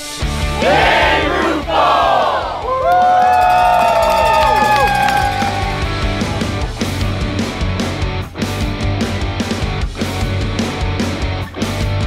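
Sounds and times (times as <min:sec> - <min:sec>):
music: 0:00.0 - 0:12.0
crowd cheering and yelling: 0:00.6 - 0:06.6.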